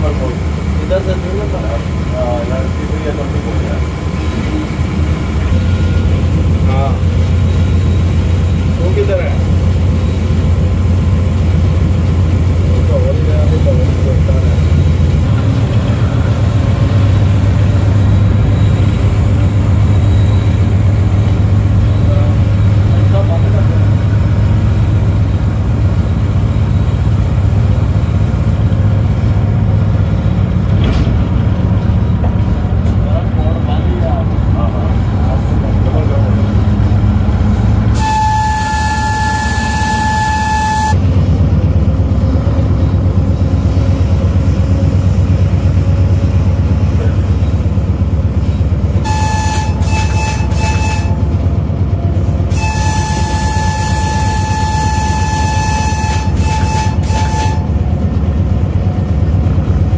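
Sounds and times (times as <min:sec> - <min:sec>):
locomotive engine chugging: 0:00.0 - 0:59.9.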